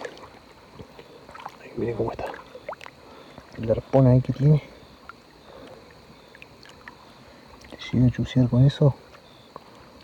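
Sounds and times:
river water sloshing: 0.0 - 8.3.

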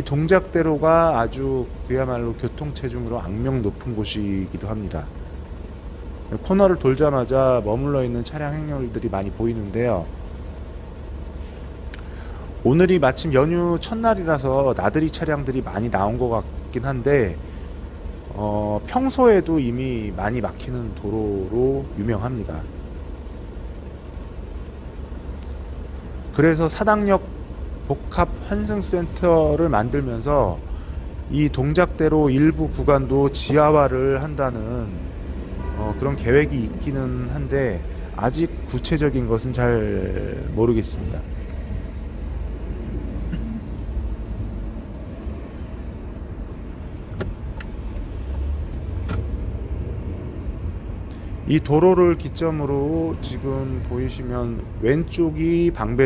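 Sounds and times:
car engine running: 0.0 - 56.0.

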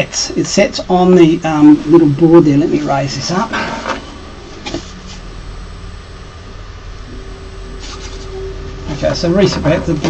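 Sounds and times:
low hum: 0.0 - 10.0
stepper motor whine: 0.4 - 10.0.

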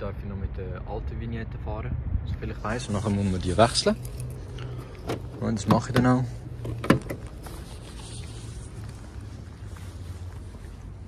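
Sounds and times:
wind rumble on microphone: 1.0 - 3.2.

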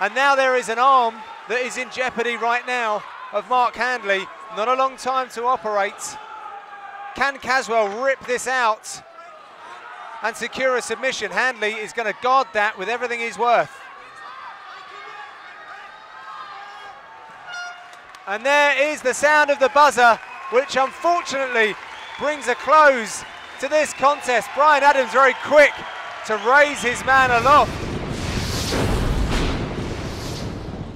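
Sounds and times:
crowd voices: 0.0 - 27.8
brief whooshes: 27.4 - 30.9.

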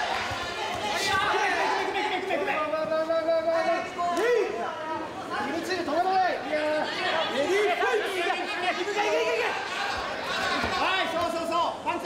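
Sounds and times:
crowd shouting: 0.0 - 2.7, 6.8 - 12.0.

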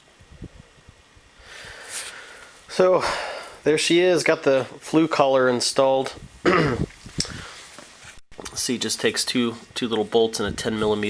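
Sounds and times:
person breathing: 1.4 - 3.6, 7.2 - 7.8.

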